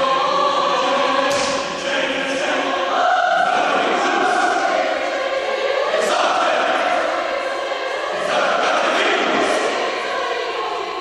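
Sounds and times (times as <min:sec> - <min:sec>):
men's choir singing chords: 0:00.0 - 0:11.0.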